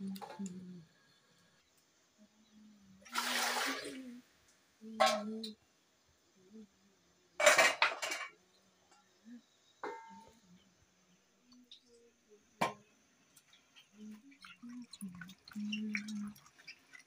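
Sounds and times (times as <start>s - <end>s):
metal kitchenware clattering: 7.4s - 8.4s.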